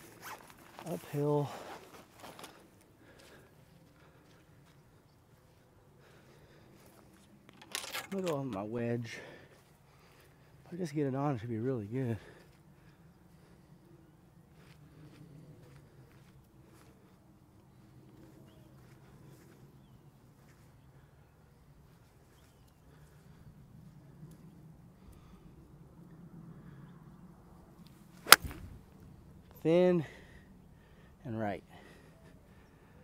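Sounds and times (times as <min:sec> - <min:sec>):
golf club striking ball: 0:28.2 - 0:28.7.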